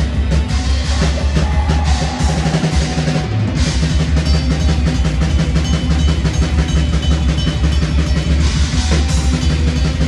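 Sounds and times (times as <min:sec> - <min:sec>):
bass guitar: 0:00.0 - 0:10.0
distorted electric guitars: 0:00.0 - 0:10.0
fast drumming: 0:00.0 - 0:10.0.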